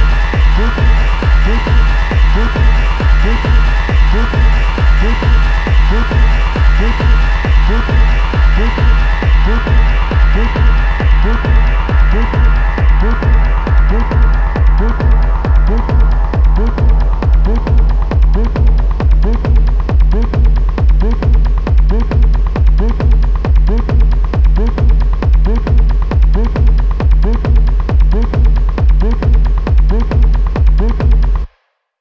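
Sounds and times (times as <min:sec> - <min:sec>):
techno kick drum beat: 0:00.0 - 0:31.5.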